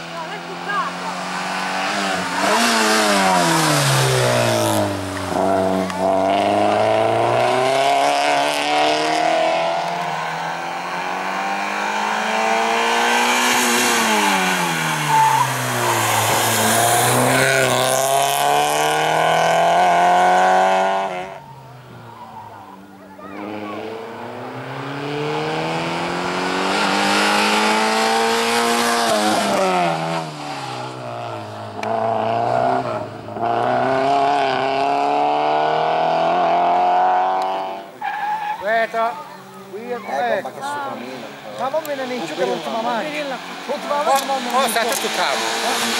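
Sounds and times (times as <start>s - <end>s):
race car engine revving: 0.0s - 21.5s, 23.4s - 38.0s, 41.2s - 45.9s.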